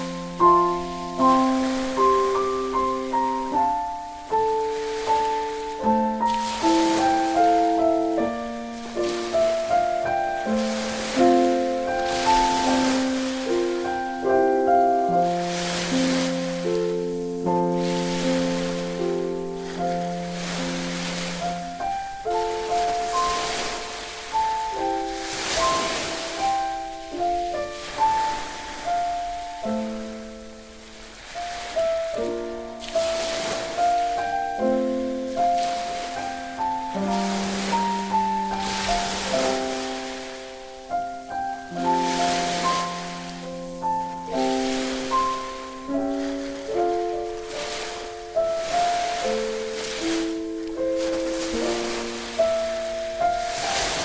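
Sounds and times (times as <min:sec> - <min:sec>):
ocean waves: 0:00.0 - 0:54.0
slow gentle piano melody: 0:00.0 - 0:54.0.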